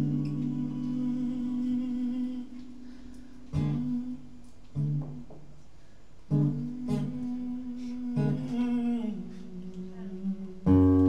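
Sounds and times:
acoustic guitar chords: 0.0 - 5.5, 6.3 - 11.0.

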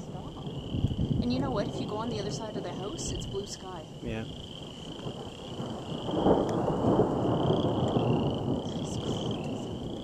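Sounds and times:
frogs trilling: 0.0 - 10.0
rolling thunder: 0.0 - 10.0.

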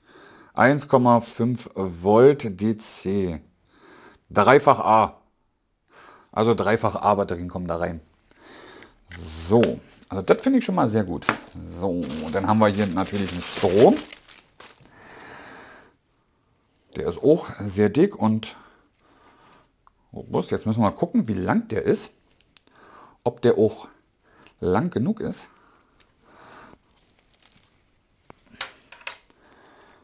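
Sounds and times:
cable rustling: 11.1 - 15.0, 26.0 - 29.4
plastic packaging crinkling: 11.1 - 15.1, 26.9 - 27.8.

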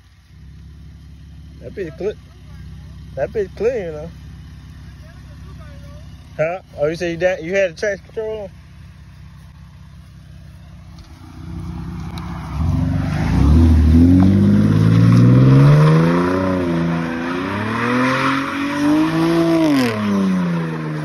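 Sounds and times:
car engine revving hard: 11.2 - 21.0.

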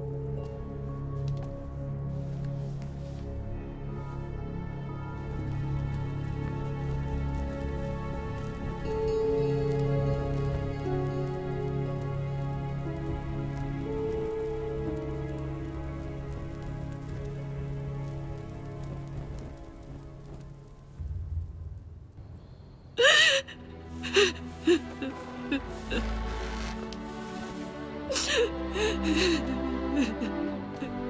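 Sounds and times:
soft music with held notes: 0.0 - 21.0, 23.5 - 31.0
woman crying loudly: 23.0 - 26.2, 28.1 - 31.0.

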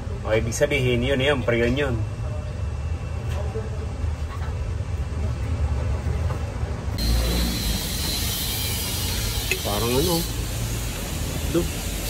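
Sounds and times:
bright hiss: 7.0 - 12.0.

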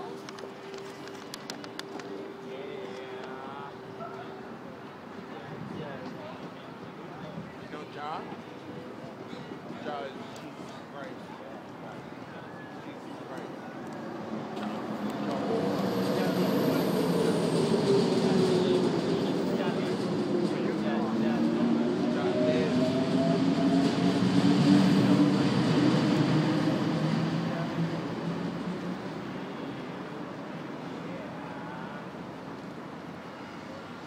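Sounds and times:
train passing with humming rumble: 13.3 - 34.0.

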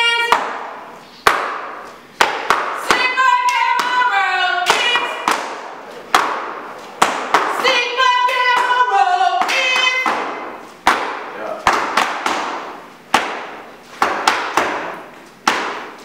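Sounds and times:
woman singing: 2.8 - 5.2, 7.5 - 10.2.

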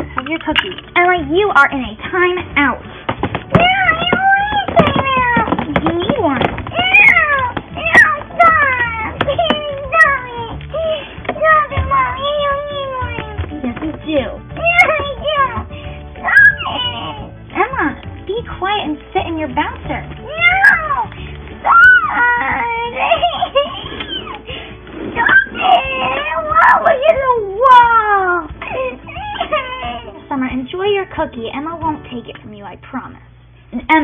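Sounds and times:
plastic knocks from handling toy: 3.1 - 6.8
girl fake crying: 6.7 - 13.3, 20.3 - 27.0, 27.8 - 30.2.

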